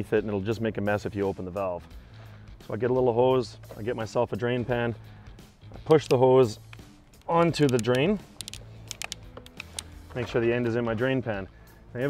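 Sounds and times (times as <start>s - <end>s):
hose clicks and rustles: 5.8s - 11.3s.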